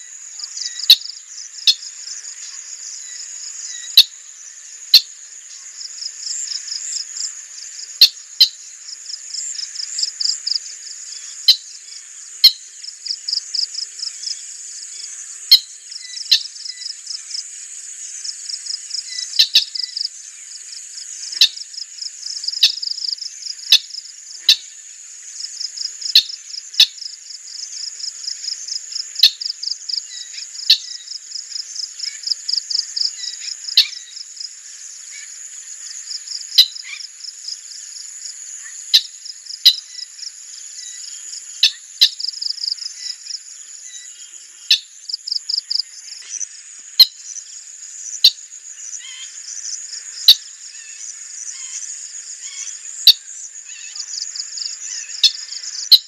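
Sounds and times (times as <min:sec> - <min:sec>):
insects trilling: 0:00.0 - 0:56.0.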